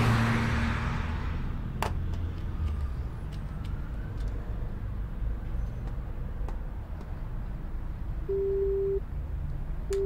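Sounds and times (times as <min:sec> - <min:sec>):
telephone ringing tone beeps: 0:08.3 - 0:09.0.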